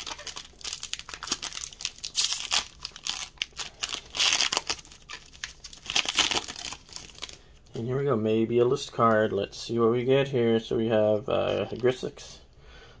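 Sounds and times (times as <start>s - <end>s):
plastic wrapper crinkling and tearing: 0.0s - 7.5s.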